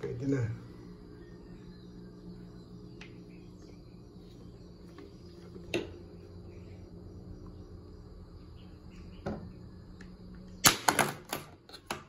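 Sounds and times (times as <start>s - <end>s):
quiet background hum: 0.0s - 12.0s.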